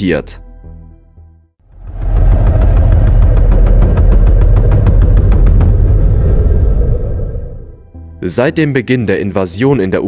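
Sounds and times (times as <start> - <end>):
heavy low rumble: 1.6 - 8.1.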